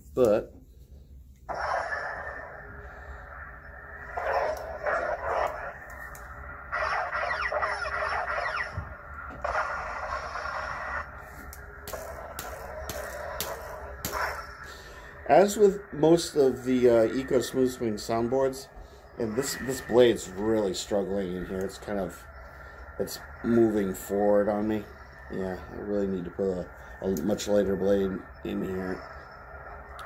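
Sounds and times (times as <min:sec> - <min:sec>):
lightsaber igniting and humming: 0:01.4 - 0:30.0
sharp clicks: 0:04.1 - 0:06.4, 0:11.4 - 0:14.6.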